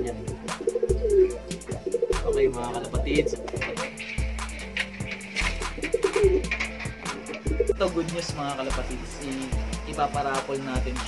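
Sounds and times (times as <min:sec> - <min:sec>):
pigeons cooing: 0:00.0 - 0:08.5
music with deep bass beat: 0:00.0 - 0:11.0.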